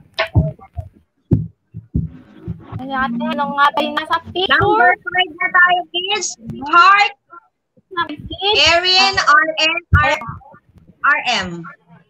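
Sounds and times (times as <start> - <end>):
dull low thumps: 0.0 - 5.8, 8.0 - 11.6
woman speaking: 2.7 - 5.2, 8.0 - 11.8.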